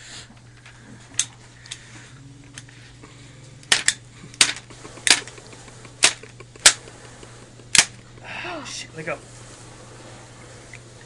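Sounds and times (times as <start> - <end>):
stapler snapping shut: 3.6 - 8.0.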